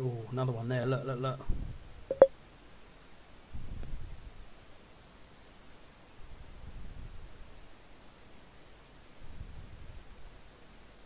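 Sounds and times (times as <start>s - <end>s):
short electronic blip: 2.1s - 2.3s.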